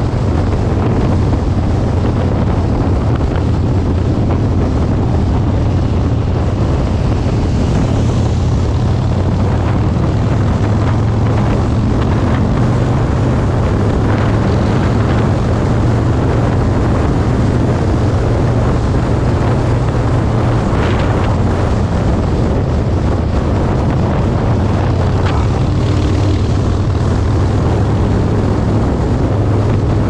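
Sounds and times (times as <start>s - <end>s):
motorcycle engine cruising: 0.0s - 30.0s
wind rushing over microphone: 0.0s - 30.0s.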